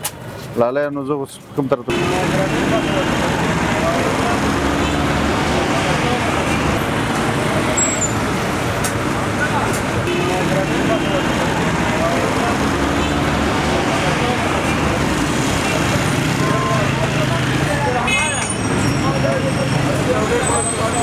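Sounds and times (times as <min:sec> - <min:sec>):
traffic noise: 0:00.0 - 0:21.0
people talking indistinctly: 0:00.6 - 0:08.2, 0:08.9 - 0:21.0.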